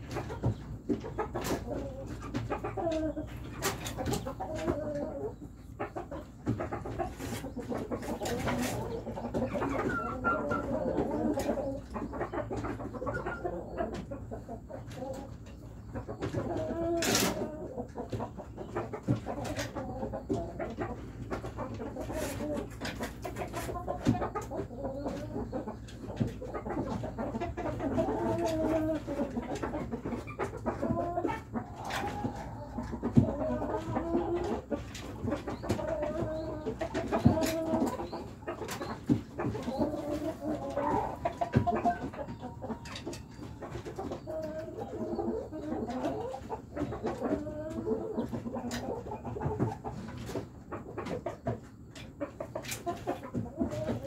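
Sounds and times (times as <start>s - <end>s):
chickens clucking: 0.0s - 54.0s.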